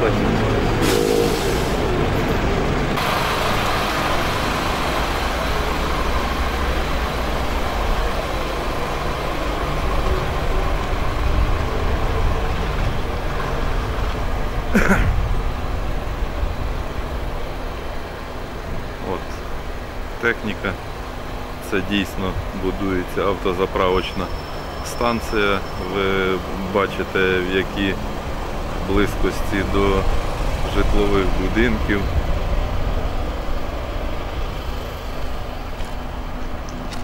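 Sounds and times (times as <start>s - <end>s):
motor vehicles rumbling: 0.0s - 37.0s.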